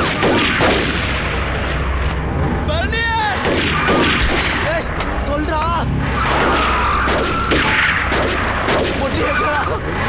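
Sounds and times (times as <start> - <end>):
gunfire: 0.0 - 1.5, 3.4 - 4.7, 6.3 - 9.3
steady low rumble: 0.0 - 10.0.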